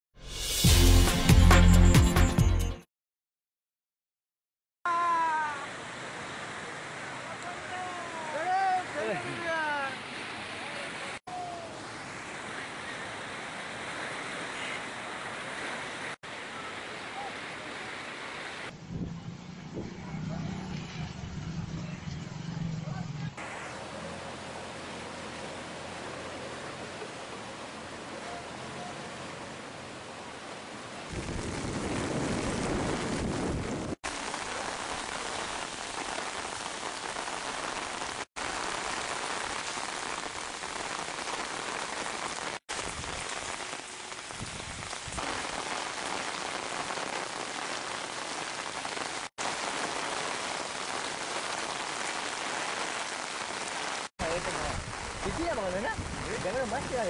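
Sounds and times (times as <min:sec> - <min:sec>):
heavy rain falling: 0:04.9 - 0:18.8, 0:22.5 - 0:57.0.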